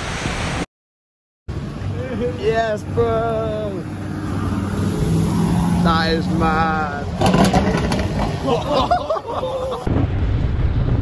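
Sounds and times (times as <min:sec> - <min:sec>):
car engine driving past: 0:03.7 - 0:08.7.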